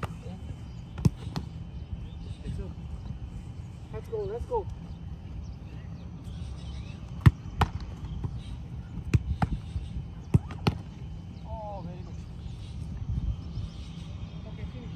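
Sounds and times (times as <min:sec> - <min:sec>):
footballs kicked thudding: 0:00.9 - 0:01.6, 0:07.1 - 0:11.0.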